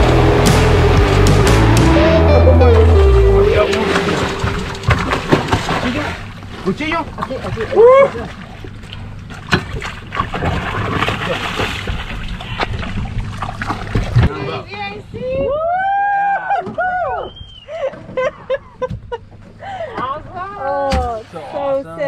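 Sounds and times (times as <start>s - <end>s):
loud drawn-out voices: 1.5s - 6.3s
fish thrashing and splashing: 3.8s - 14.3s.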